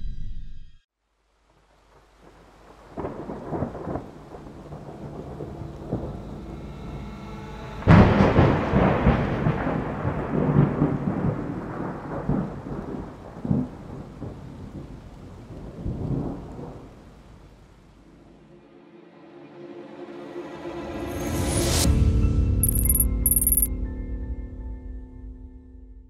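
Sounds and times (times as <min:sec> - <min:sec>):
rain: 0:01.0 - 0:18.7
low rolling thunder: 0:02.8 - 0:06.2, 0:07.9 - 0:17.3
loud thunderclap: 0:03.0 - 0:05.0, 0:07.9 - 0:14.9.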